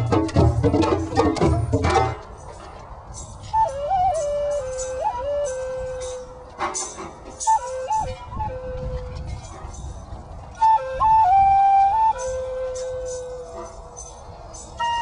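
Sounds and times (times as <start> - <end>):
light shaken percussion: 0.0 - 15.0
flute melody: 3.4 - 15.0.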